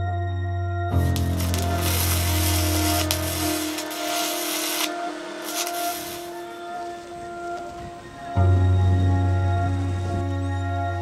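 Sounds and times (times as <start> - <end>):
background music with held tones: 0.0 - 11.0
welding arc crackling and hissing: 1.0 - 8.4.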